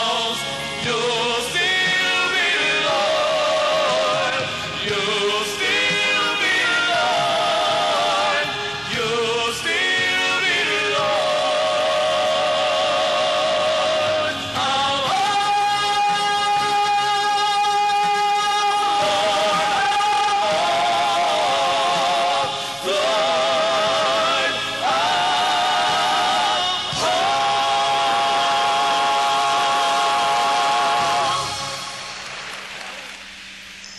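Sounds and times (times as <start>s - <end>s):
vocal trio singing a long note: 0.0s - 32.4s.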